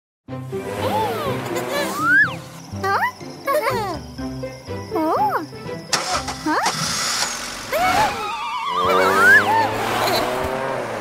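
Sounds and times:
cartoon background music: 0.3 - 10.0
swooping wavering cries: 0.8 - 5.5, 7.7 - 10.0.

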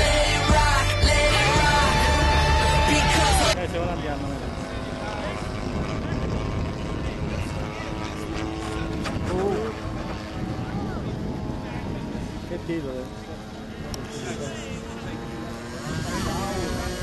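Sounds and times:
model airplane engine running: 1.4 - 17.0.

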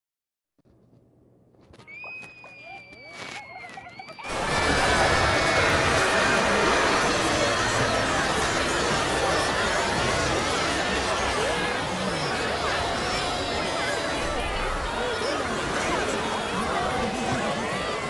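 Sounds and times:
high whistle-like tone: 1.8 - 9.5
overlapping cartoon voices and music: 2.6 - 18.0.

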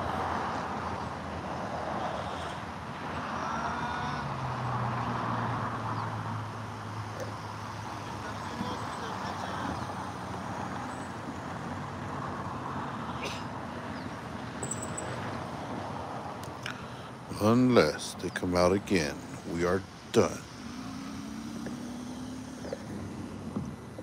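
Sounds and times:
cars passing tyre noise: 0.0 - 24.0
low engine hum: 3.8 - 24.0.

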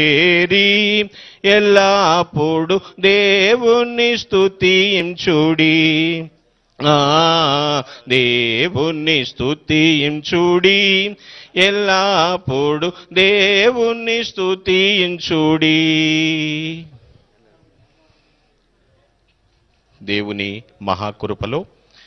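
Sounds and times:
person singing a hymn: 0.0 - 17.0.

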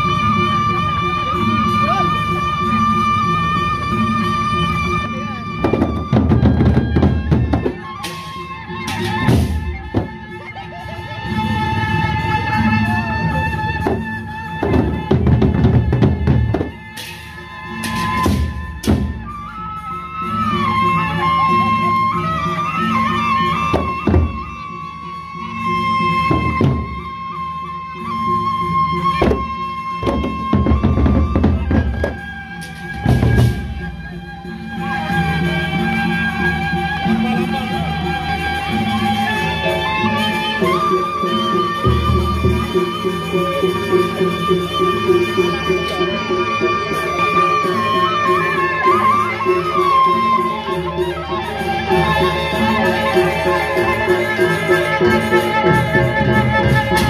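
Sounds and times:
wavering melodic line: 0.0 - 57.0
barrel drums beating: 5.6 - 10.4, 13.7 - 19.5, 23.6 - 24.6, 26.3 - 27.2, 29.2 - 34.3.

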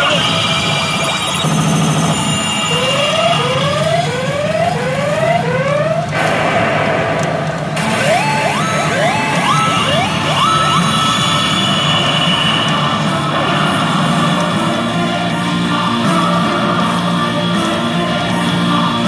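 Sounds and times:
rising stepped electronic sweeps: 0.0 - 15.6
din of pachinko parlour: 0.0 - 19.0
rising electronic whoops: 2.2 - 6.3, 7.2 - 13.3.

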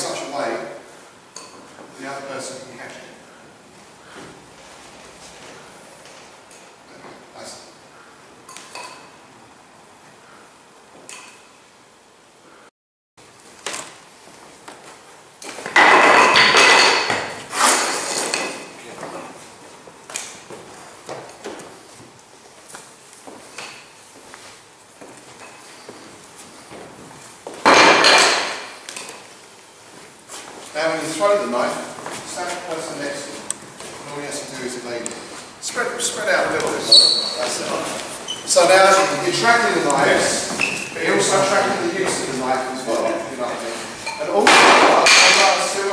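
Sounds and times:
wooden knives tapping: 44.1 - 45.6.

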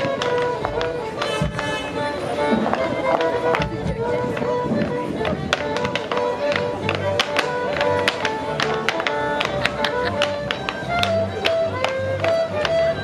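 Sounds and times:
fiddle tune: 0.0 - 13.0
low musical accompaniment: 0.0 - 13.0
clogs tapping on wooden floor: 2.6 - 12.9.

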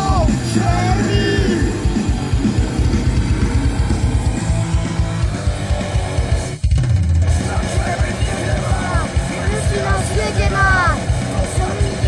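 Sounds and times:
rock music: 0.0 - 12.0.

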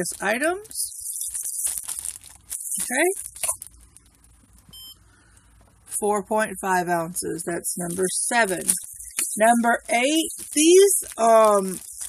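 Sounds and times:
plastic bag crinkling: 0.0 - 4.7, 7.8 - 12.0.

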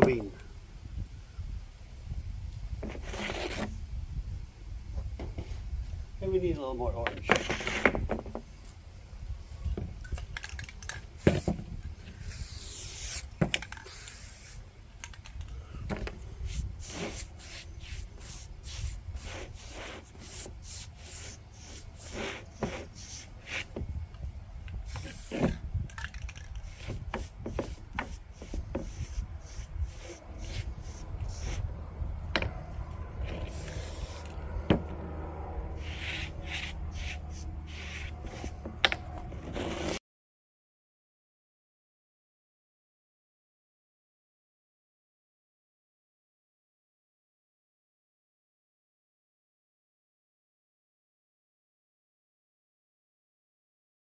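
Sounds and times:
spray can rattling: 10.2 - 11.6, 12.2 - 15.5, 24.9 - 31.6, 33.5 - 34.3
spray paint hissing: 10.7 - 14.7, 16.3 - 23.8, 24.8 - 25.6, 26.2 - 31.7, 33.4 - 34.4, 35.8 - 38.6.

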